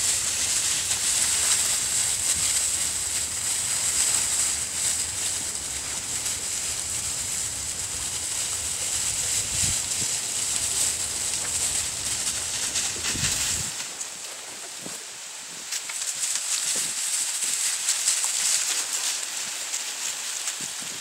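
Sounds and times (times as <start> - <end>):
dry leaves rustling and crunching: 0.0 - 21.0
steady high hiss: 0.0 - 21.0.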